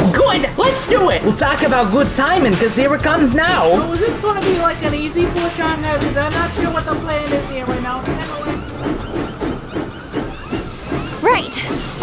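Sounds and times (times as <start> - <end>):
steam locomotive chuffing: 0.0 - 12.0.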